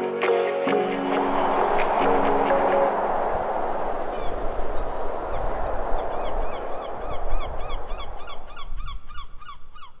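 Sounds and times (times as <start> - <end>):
low rumbling haze: 0.9 - 9.2
birds calling: 4.1 - 10.0.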